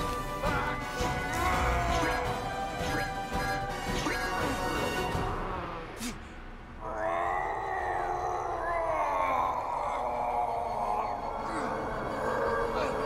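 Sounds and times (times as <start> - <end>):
man groaning: 0.5 - 4.7, 6.8 - 13.0.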